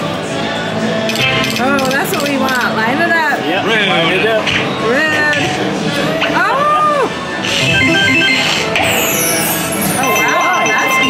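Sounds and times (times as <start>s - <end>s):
slot machine reels spinning: 1.1s - 2.8s, 7.4s - 11.0s
electronic sound effects: 7.4s - 11.0s.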